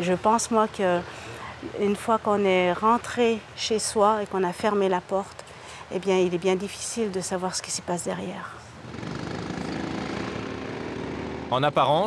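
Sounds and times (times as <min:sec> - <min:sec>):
go-kart engine droning: 0:08.8 - 0:11.8.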